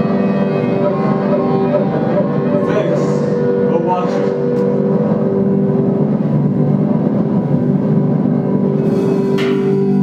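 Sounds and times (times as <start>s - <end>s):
droning electronic noise music: 0.0s - 10.0s.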